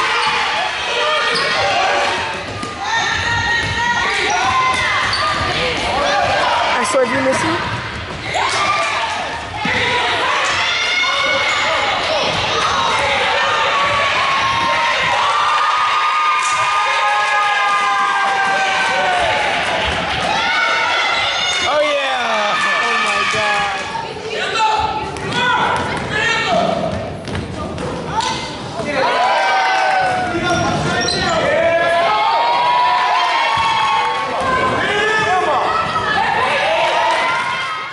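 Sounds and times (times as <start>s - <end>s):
crowd cheering and shouting: 0.0s - 27.1s, 28.1s - 37.9s.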